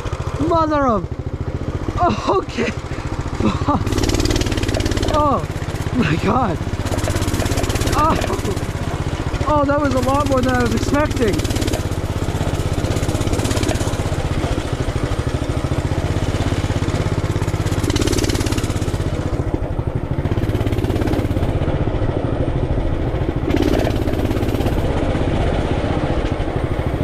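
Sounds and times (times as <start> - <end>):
small engine running: 0.0 - 27.0.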